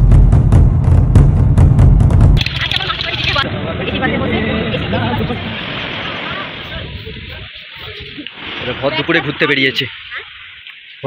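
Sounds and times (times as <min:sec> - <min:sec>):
road traffic and buses: 0:02.4 - 0:09.0
people talking: 0:02.4 - 0:10.5.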